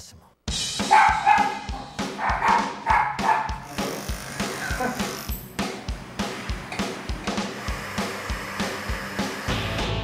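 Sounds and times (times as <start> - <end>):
background music with drum beat: 0.5 - 10.0
small dog barking and yipping: 0.9 - 3.6.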